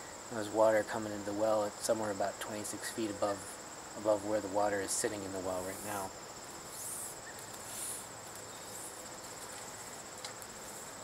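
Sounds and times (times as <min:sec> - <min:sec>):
insects chirring: 0:00.0 - 0:11.0
measuring tape rustling: 0:05.7 - 0:11.0.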